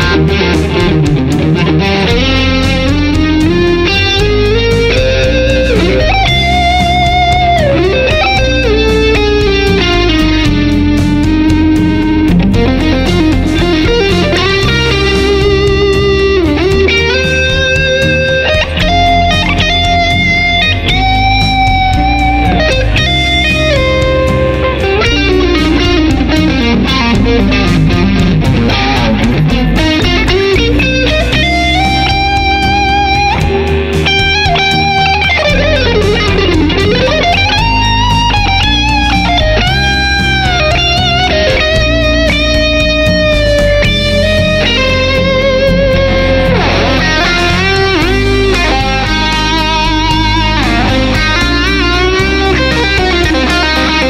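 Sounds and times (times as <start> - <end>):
electric guitar lead: 0.0 - 54.0.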